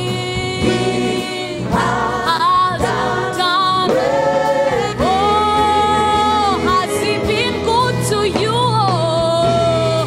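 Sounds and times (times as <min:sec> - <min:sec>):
group singing gospel: 0:00.0 - 0:08.1.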